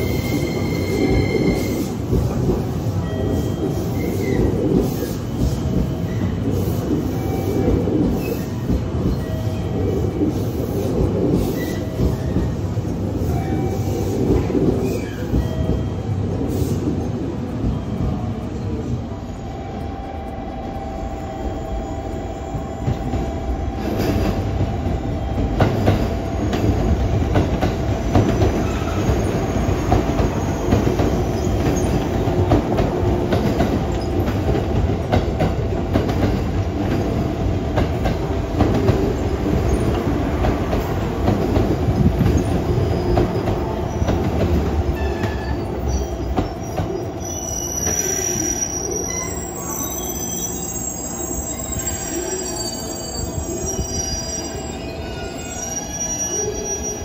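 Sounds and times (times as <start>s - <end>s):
train wheels rumbling on rails: 0.0s - 57.0s
brake squeal: 47.2s - 57.0s.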